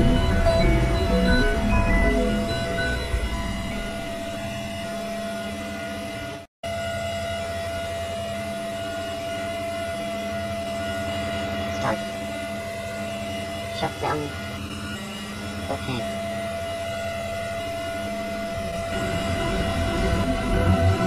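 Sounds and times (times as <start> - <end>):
steady hum with tones: 0.0 - 21.0.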